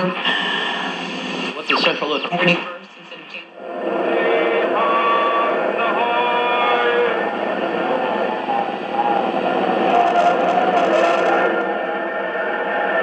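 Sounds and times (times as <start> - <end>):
radio drama tones through speaker: 0.0 - 11.8.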